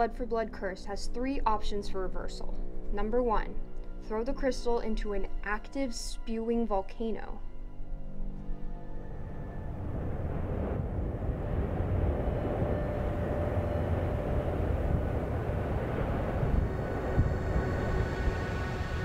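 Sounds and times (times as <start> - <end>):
deep rumble of erupting volcano: 9.1 - 19.0.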